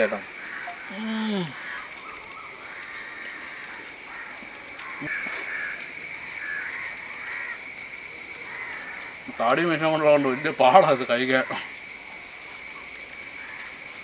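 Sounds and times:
high-pitched insect drone: 0:00.0 - 0:14.0.

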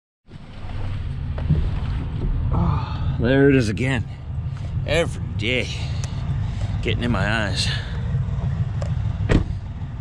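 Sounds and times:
truck diesel engine idling: 0:02.8 - 0:10.0.

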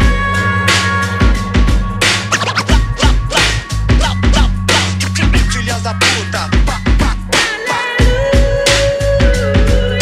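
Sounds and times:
hip-hop band playing: 0:00.0 - 0:10.0
record scratching: 0:02.2 - 0:07.2.

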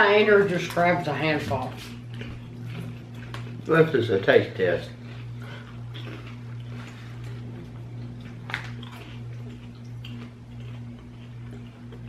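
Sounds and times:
steady low hum: 0:00.0 - 0:12.0
popcorn crunching being chewed: 0:00.1 - 0:12.0.

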